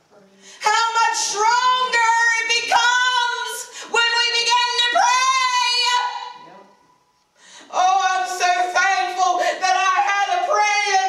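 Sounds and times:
woman singing into microphone: 0.6 - 6.4, 7.6 - 11.0.

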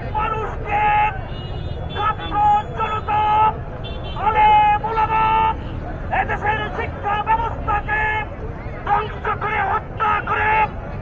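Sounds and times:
man chanting through a megaphone: 0.0 - 1.2, 1.8 - 11.0
low rumble of a crowd: 0.0 - 11.0.

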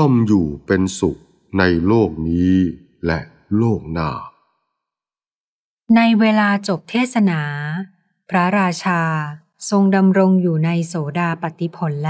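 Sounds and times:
person reciting verse: 0.0 - 4.3.

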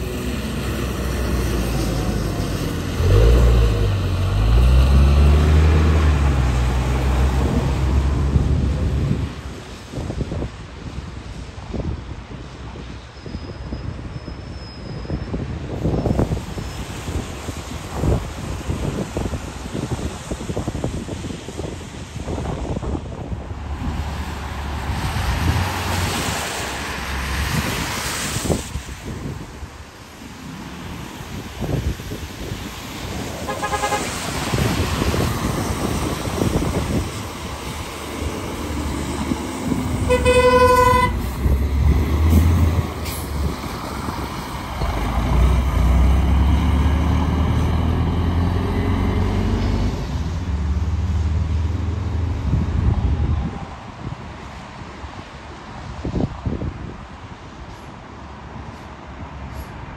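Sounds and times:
bus engines rumbling: 0.0 - 59.9
short horn toot: 33.5 - 34.1, 40.0 - 41.3
horn blast: 33.5 - 34.2, 40.0 - 41.3.

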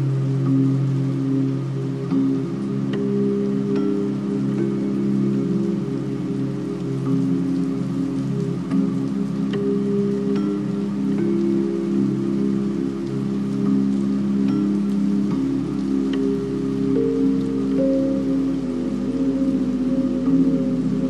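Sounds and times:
soft sustained low chords: 0.0 - 21.0
steady hiss: 0.0 - 21.0.

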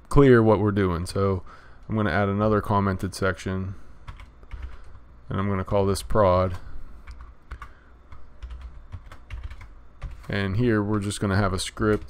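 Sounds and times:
computer keyboard typing: 4.0 - 5.0, 7.0 - 12.0.

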